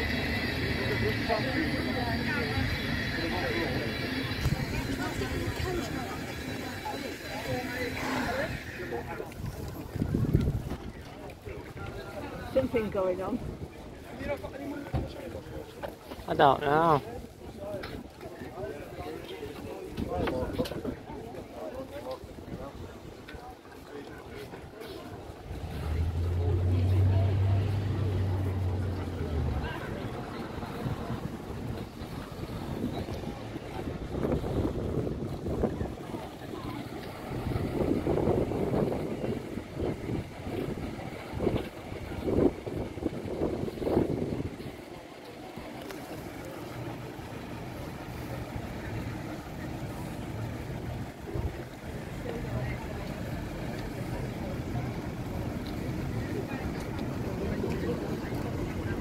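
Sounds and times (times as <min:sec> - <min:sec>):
wind on microphone: 0:09.2 - 0:11.9, 0:30.0 - 0:45.0.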